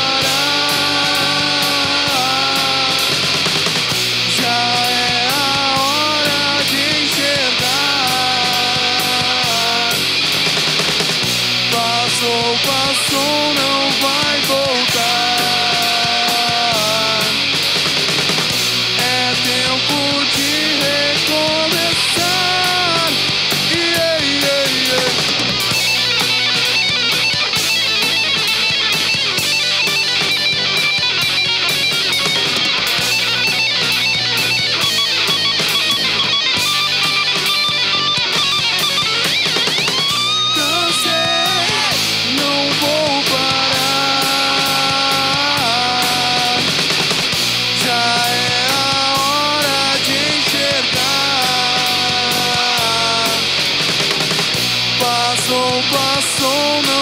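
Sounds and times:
bass guitar: 0:00.0 - 0:57.0
distorted electric guitars: 0:00.0 - 0:57.0
drum kit with cymbals: 0:00.0 - 0:57.0
rock band playing live: 0:00.0 - 0:57.0.

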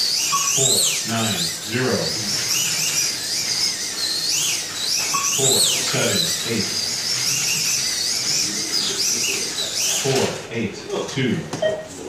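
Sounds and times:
slot car motors whining: 0:00.0 - 0:12.0.

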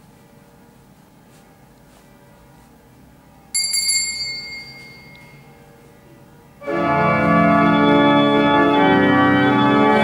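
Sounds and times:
small bell ringing: 0:03.5 - 0:05.6.

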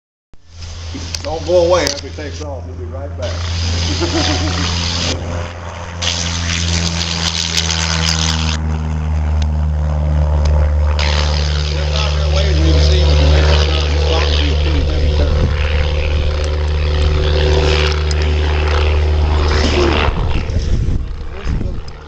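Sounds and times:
propeller airplane engine drone: 0:00.4 - 0:22.0.

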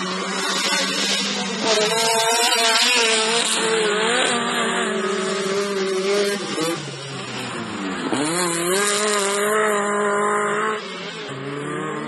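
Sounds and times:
race car engines revving: 0:00.0 - 0:12.0.

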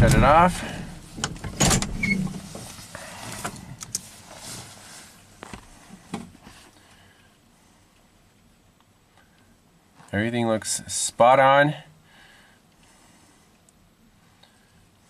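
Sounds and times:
engine clicks and knocks: 0:00.0 - 0:02.5
low background noise: 0:00.0 - 0:15.0.

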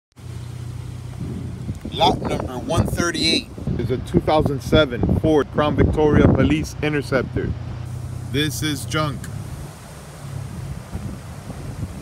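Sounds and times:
low mechanical hum: 0:00.2 - 0:04.0.

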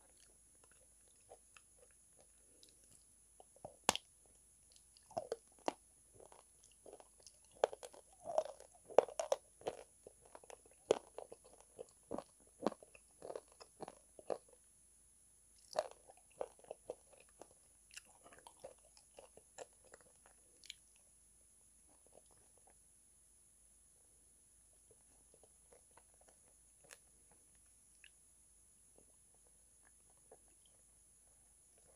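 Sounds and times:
chalk crunching while chewed: 0:04.7 - 0:14.6, 0:15.6 - 0:20.8.

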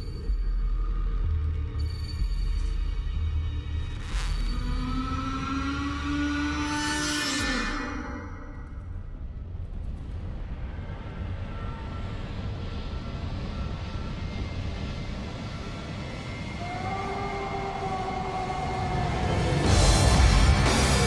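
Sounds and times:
low rumbling trailer sound design: 0:07.6 - 0:16.8, 0:17.4 - 0:21.0.

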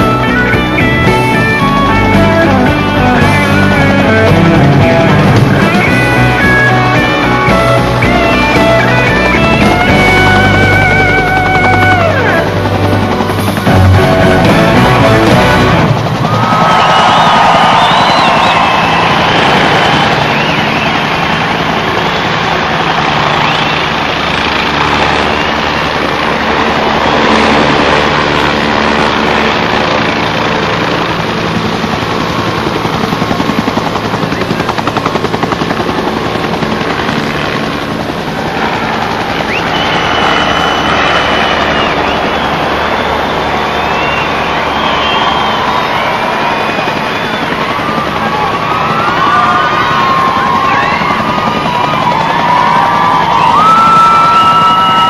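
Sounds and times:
helicopter rotor beating: 0:00.0 - 0:55.0
high whistle-like gliding tones: 0:16.3 - 0:28.1, 0:38.6 - 0:55.0.

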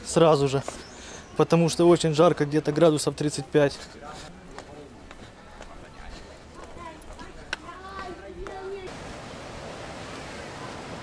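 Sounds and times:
footsteps on concrete steps: 0:00.0 - 0:08.9
faint background voices: 0:00.6 - 0:08.9.

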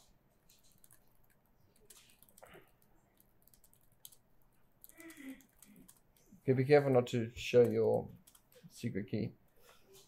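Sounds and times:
laptop keyboard keystrokes: 0:00.5 - 0:04.2, 0:04.8 - 0:06.3, 0:07.6 - 0:08.6.

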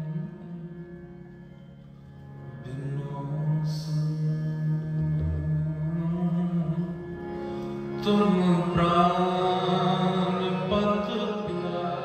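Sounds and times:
harmonium chords: 0:00.0 - 0:12.0
person singing devotional line: 0:07.9 - 0:12.0.

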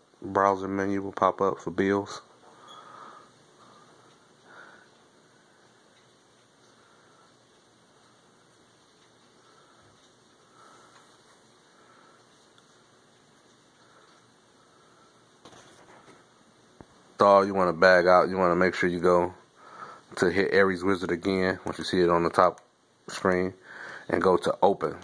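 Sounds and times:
recording hiss: 0:00.0 - 0:25.0.

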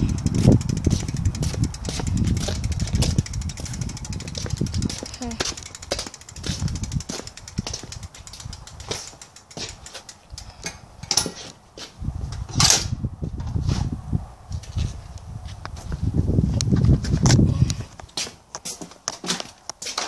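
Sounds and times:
microphone rumble: 0:00.0 - 0:08.0.

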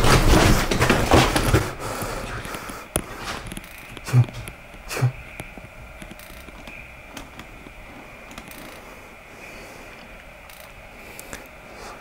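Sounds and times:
faint steady hiss: 0:01.4 - 0:12.0.

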